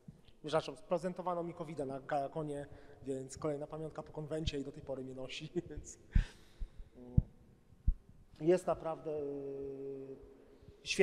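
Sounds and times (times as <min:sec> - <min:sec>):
breath into microphone: 0:02.7 - 0:03.1, 0:06.1 - 0:07.0
low microphone thumps: 0:03.2 - 0:09.0.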